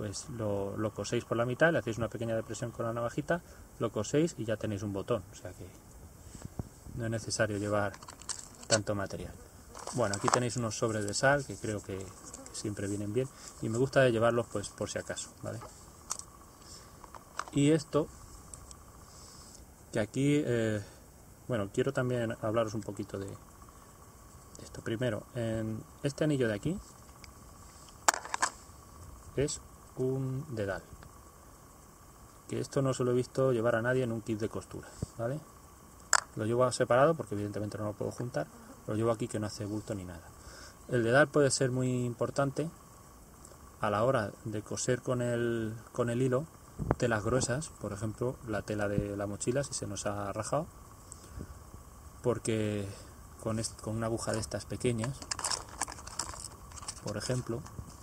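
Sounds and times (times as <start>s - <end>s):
low steady background hiss: 0.0s - 58.0s
light crinkling: 7.4s - 17.6s, 54.2s - 58.0s
small sharp clicks of handled items: 7.9s - 8.8s, 15.6s - 16.3s, 27.9s - 28.6s, 55.0s - 57.4s.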